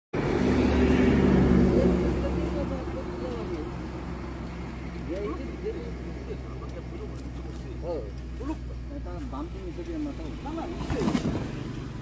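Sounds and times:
vehicle engine passing by: 0.2s - 12.0s.

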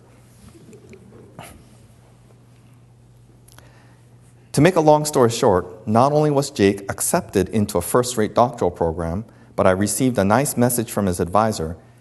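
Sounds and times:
faint low murmur: 0.0s - 5.0s
low electrical hum: 0.0s - 12.0s.

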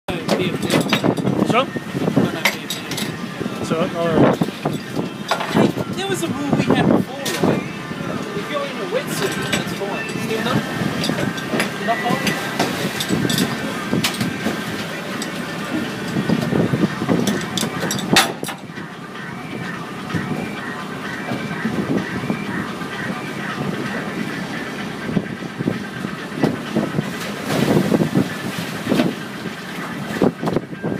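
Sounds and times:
boat engine running: 0.1s - 30.9s.

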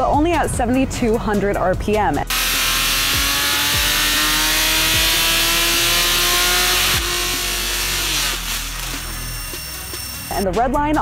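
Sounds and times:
engine revving under load: 2.3s - 10.2s.

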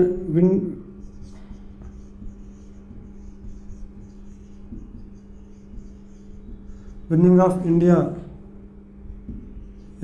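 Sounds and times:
marker scratching on whiteboard: 0.0s - 10.0s
steady low hum: 0.0s - 10.0s.

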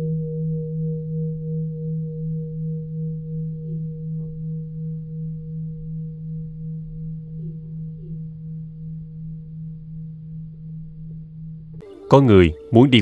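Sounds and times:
low ringing hum: 0.0s - 12.9s.

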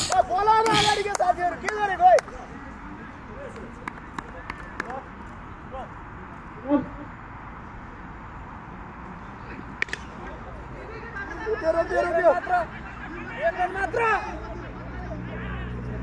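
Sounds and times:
person shouting: 0.0s - 1.3s
distant players calling: 0.0s - 8.0s, 9.0s - 16.0s.

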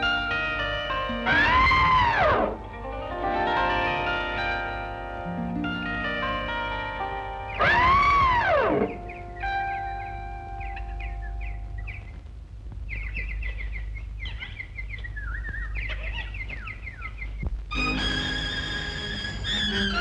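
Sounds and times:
music: 0.0s - 12.2s, 17.7s - 20.0s
birds chirping: 0.0s - 20.0s
elephant trumpeting: 1.3s - 2.8s, 7.6s - 9.2s.

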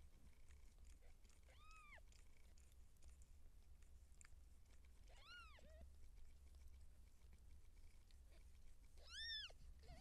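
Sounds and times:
low steady hum: 0.0s - 10.0s
cat meowing: 9.0s - 10.0s.

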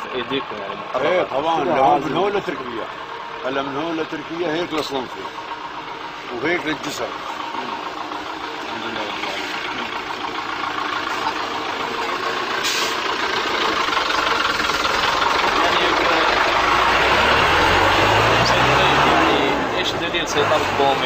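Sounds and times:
vehicle engine approaching: 0.0s - 21.0s
short hiss: 12.6s - 13.0s.

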